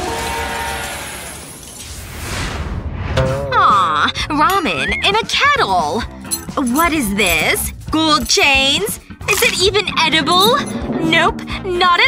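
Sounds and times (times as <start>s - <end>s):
whoosh: 1.7s - 3.4s
background music: 3.2s - 12.0s
person speaking: 3.6s - 12.0s.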